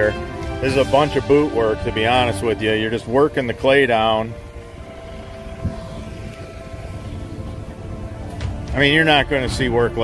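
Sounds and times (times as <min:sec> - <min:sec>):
low rumbling noise: 0:00.0 - 0:10.0
music with held notes: 0:00.0 - 0:10.0.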